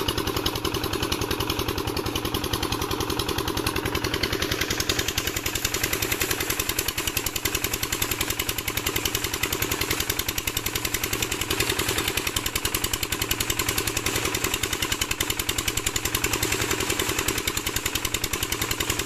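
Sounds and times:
diesel engine running a water pump: 0.0s - 19.0s.

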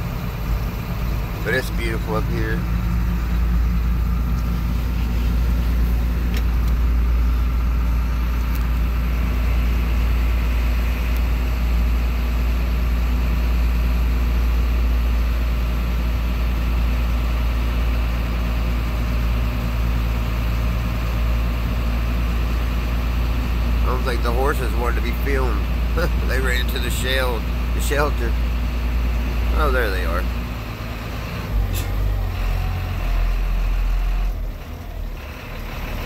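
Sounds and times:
truck engine low hum: 0.0s - 36.0s.

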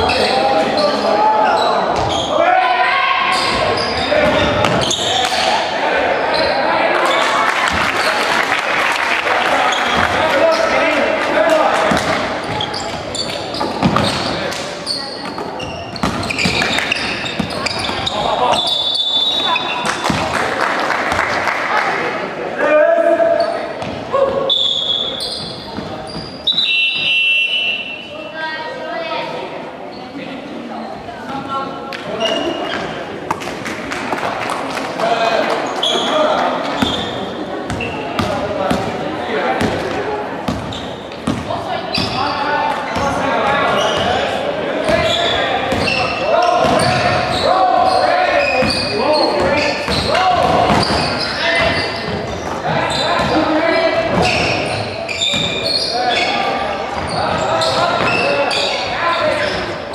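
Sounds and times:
basketball bouncing on wooden court: 13.6s - 14.4s, 15.3s - 18.2s, 39.6s - 39.9s, 40.5s - 42.2s, 44.9s - 46.0s, 48.6s - 52.6s.

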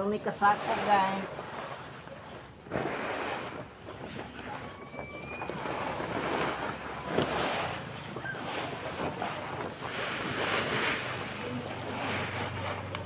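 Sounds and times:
plastic tarp rustling: 0.7s - 13.0s
grains sliding across tarp: 5.5s - 13.0s.

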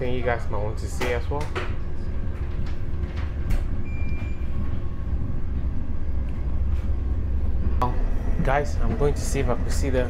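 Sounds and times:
train rumble inside carriage: 0.0s - 10.0s.

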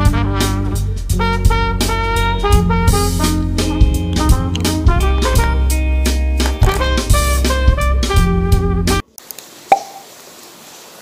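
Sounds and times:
light rain hiss: 9.0s - 11.0s
sharp short plop: 9.7s - 10.0s.

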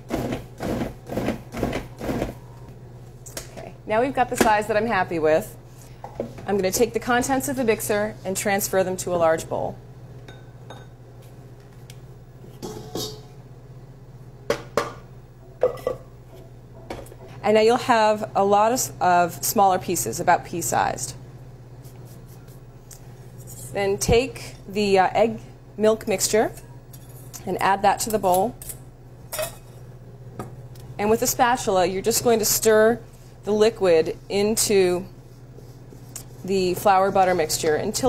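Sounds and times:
steady low hum: 0.0s - 38.0s
bowl and blade knocking on steel bowl: 12.6s - 13.3s
metal kitchenware clinking: 12.6s - 13.3s.

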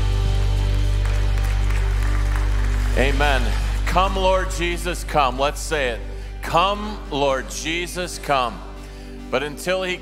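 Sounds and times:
bass holding a chord: 0.0s - 10.0s.

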